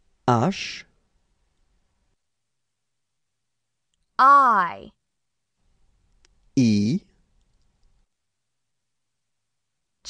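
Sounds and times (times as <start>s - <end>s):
small clicks: 7.4s - 8.1s.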